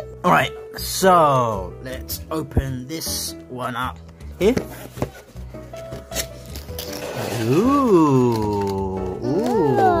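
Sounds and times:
background music: 0.0s - 10.0s
cardboard box scraping and rustling: 4.6s - 7.9s.

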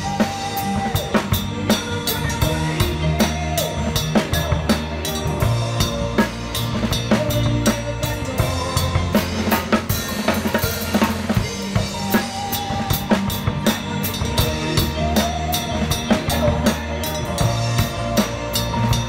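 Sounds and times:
low bass notes: 0.0s - 19.0s
rock drum kit playing: 0.0s - 19.0s.

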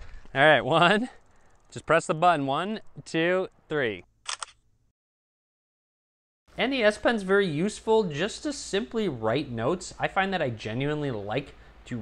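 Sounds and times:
camera shutter double click: 4.2s - 4.6s.

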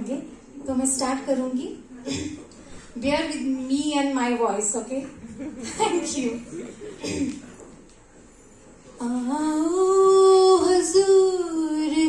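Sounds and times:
woman singing into a microphone: 9.0s - 12.0s.

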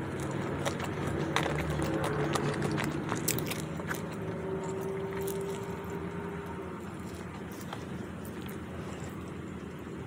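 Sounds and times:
chewing crunchy fried food: 0.0s - 10.0s.

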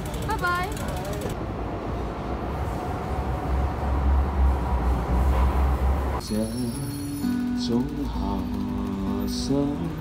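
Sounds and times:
subway train rumble: 0.0s - 10.0s.

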